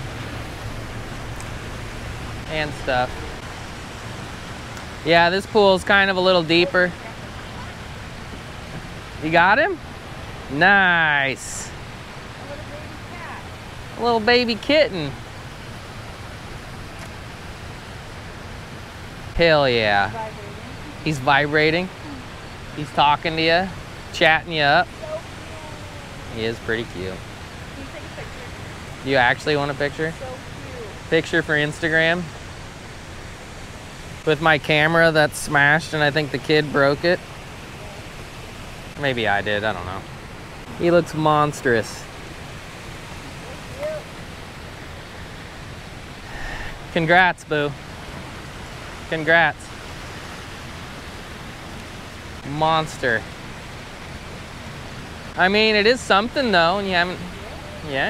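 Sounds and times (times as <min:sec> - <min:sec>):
water rushing over rocks: 0:00.0 - 0:58.0.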